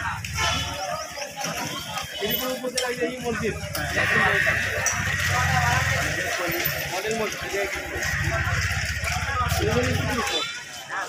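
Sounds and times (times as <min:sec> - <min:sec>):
people talking outdoors: 0:00.0 - 0:11.0.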